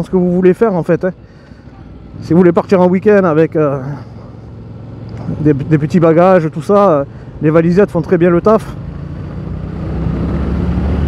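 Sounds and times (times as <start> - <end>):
motorcycle engine accelerating: 8.6 - 11.0.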